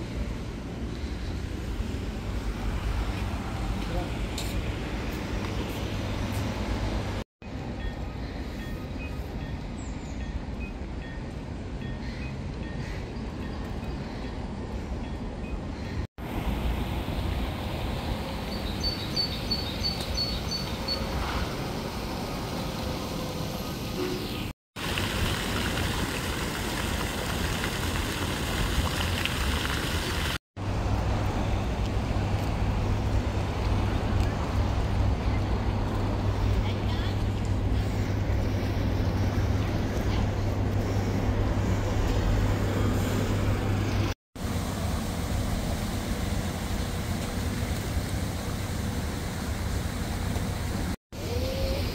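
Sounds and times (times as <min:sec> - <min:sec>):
road traffic: 0:00.0 - 0:51.9
fountain splashing: 0:20.6 - 0:30.4.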